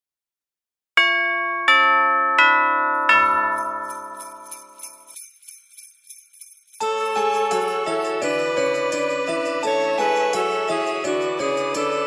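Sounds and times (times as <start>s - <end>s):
bell-like chime notes: 1.0s - 9.8s.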